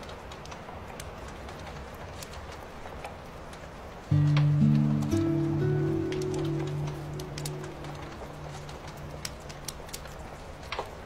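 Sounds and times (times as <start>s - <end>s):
campfire crackling: 0.0s - 11.0s.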